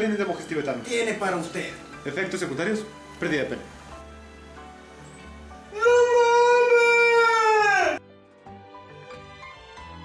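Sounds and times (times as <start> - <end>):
long high-pitched yell: 5.7 - 8.0.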